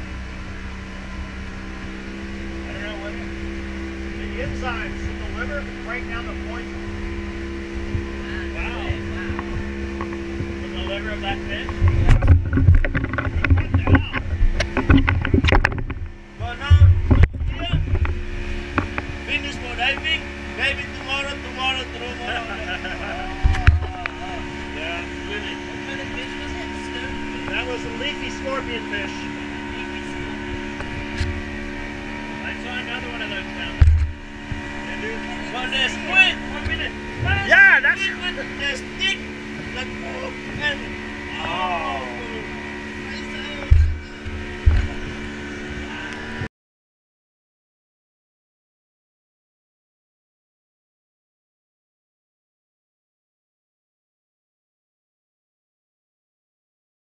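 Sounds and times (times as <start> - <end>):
outboard motor running: 0.0 - 46.5
low thumps: 3.2 - 21.2, 22.7 - 41.3, 43.6 - 45.8.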